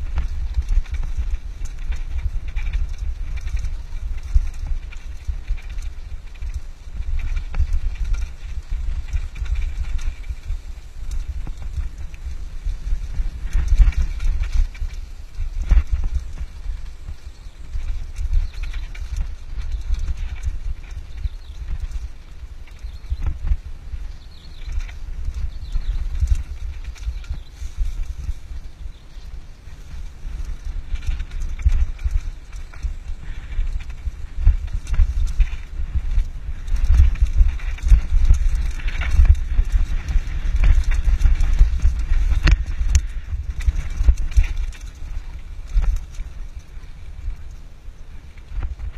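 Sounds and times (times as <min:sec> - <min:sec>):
bike rattling and clicking: 0:00.0 - 0:48.9
wind buffeting microphone: 0:00.0 - 0:48.9.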